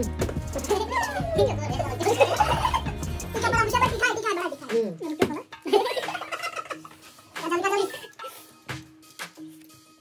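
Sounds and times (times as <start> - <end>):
men laughing: 0.5 - 3.8, 5.6 - 8.4.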